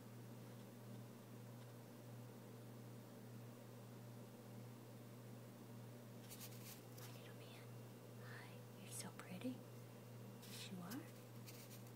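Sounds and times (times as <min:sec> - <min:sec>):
steady low hum: 0:00.0 - 0:11.9
faint whispering voice: 0:07.0 - 0:09.6, 0:10.5 - 0:11.2.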